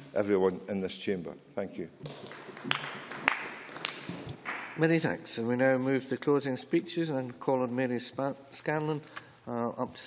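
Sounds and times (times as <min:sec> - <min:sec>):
scattered applause: 0:02.1 - 0:04.7.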